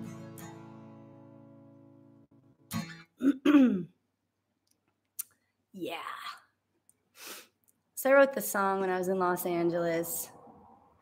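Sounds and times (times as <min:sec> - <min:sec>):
woman clearing her throat: 0:03.1 - 0:04.0.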